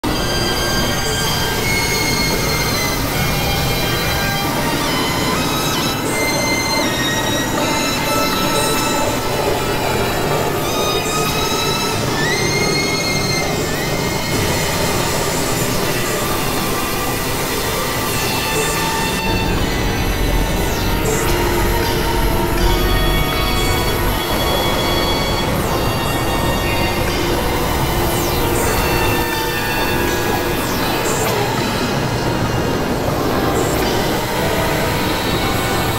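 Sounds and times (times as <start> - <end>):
electronic noise wash: 0.0 - 35.9
high squealing synth tones: 0.0 - 35.9.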